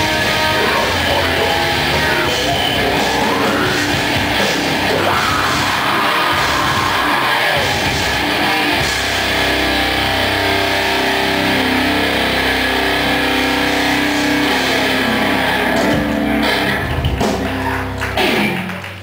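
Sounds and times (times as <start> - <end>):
drum and cymbal hits: 0.0 - 9.3
distorted electric guitars and bass: 0.0 - 19.0.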